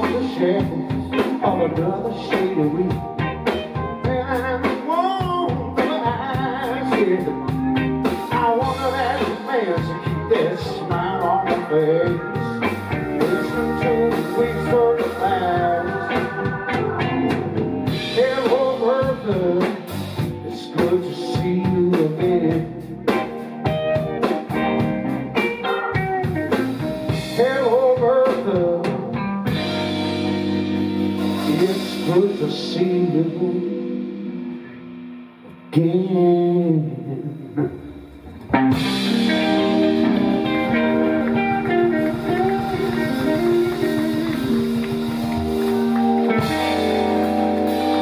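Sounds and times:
organ: 0.0 - 36.3, 38.6 - 48.0
bass guitar: 0.0 - 48.0
drums: 0.0 - 48.0
electric guitar lead lines: 0.0 - 48.0.

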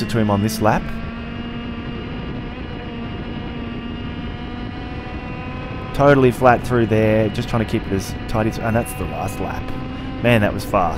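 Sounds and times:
kart engine at high revs: 0.0 - 10.9.

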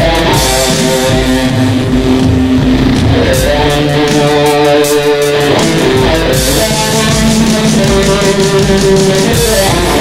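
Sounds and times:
distorted electric guitar note: 0.0 - 10.0
low bass rumble: 1.2 - 4.3.

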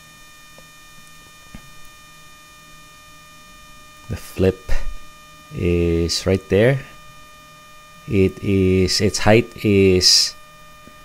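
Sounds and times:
drones hovering hum: 0.0 - 11.0
even steady tones: 0.0 - 11.0.

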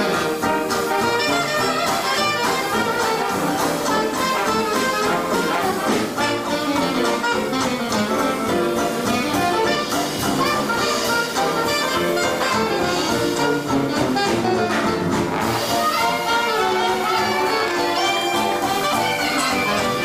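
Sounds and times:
jazz band playing live: 0.0 - 20.0.

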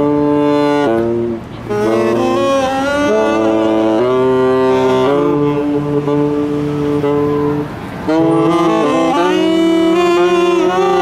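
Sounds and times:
saxophones playing in harmony: 0.0 - 11.0.

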